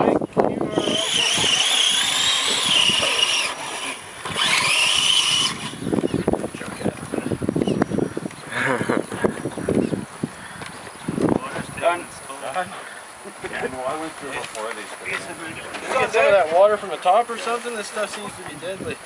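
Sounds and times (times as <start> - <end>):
voices: 0.0 - 19.0
electric motor whining: 0.5 - 10.0.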